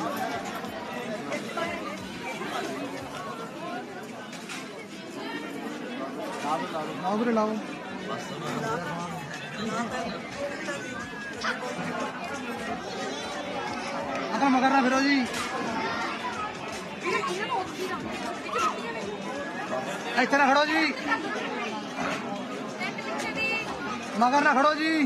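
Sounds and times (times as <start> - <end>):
overlapping chatter: 0.0 - 25.0.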